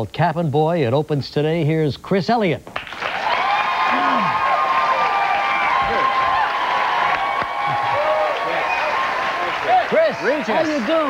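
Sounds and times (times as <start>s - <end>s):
studio audience applauding: 2.8s - 11.0s
audience whooping: 3.0s - 11.0s.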